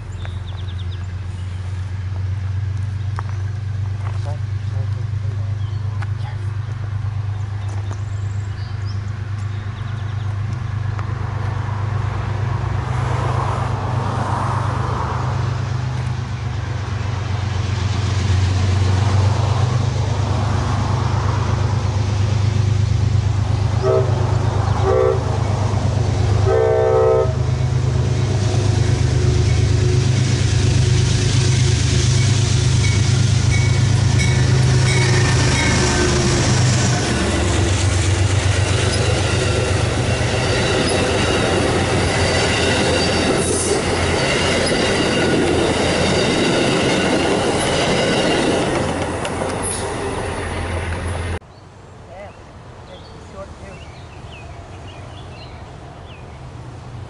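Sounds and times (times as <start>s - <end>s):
diesel locomotive drone: 0.0s - 51.5s
train horn blasts: 23.8s - 25.4s, 26.4s - 27.6s
train wheels clattering: 27.6s - 51.4s.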